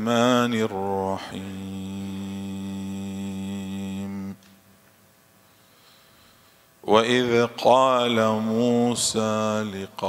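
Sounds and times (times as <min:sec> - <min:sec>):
man chanting recitation: 0:00.0 - 0:04.4, 0:06.8 - 0:10.0.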